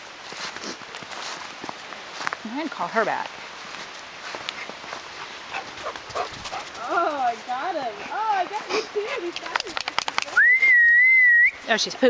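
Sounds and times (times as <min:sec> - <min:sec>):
footsteps crunching in snow: 0:00.0 - 0:09.3.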